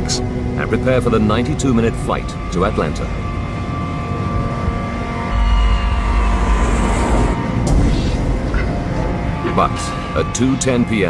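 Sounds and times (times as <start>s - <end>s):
deep rumble: 0.0s - 10.9s
dark suspenseful music: 0.0s - 11.0s.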